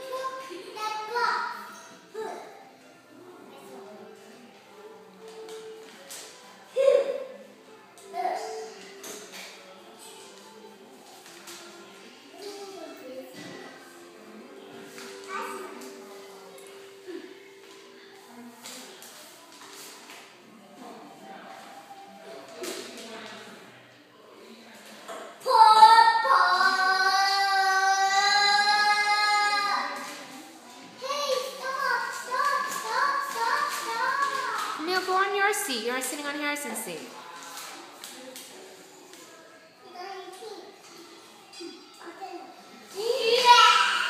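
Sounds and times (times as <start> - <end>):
chatter: 0.0 - 44.0
faint background music: 0.0 - 44.0
child singing a long note: 25.5 - 29.9.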